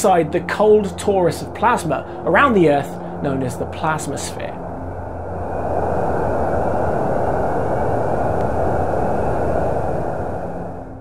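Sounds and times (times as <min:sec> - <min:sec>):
even mid-pitched hiss: 0:00.0 - 0:10.1.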